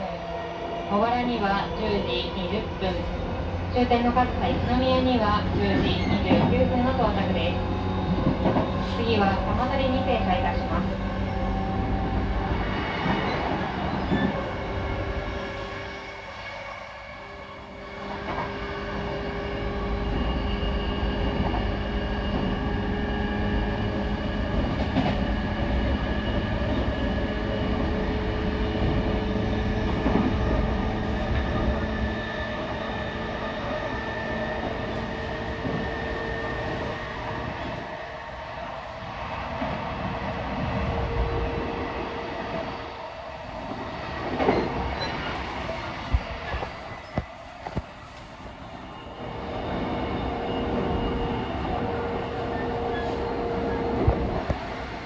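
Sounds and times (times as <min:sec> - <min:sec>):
train wheels rumbling on rail: 0:00.0 - 0:16.4, 0:17.5 - 0:55.0.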